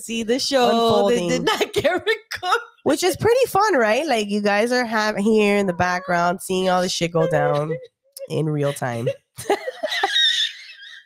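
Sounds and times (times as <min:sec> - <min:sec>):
woman laughing hard: 0:08.7 - 0:11.0.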